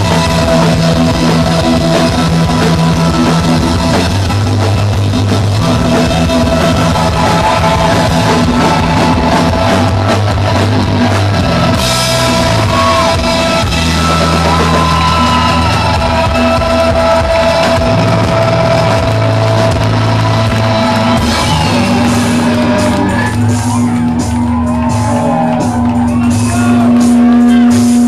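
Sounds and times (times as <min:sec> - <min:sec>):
electronic rock band playing: 0:00.0 - 0:28.0.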